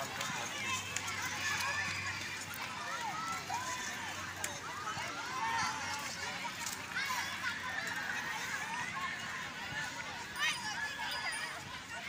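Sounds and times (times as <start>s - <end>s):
crowd shouting and calling out: 0.0s - 12.0s.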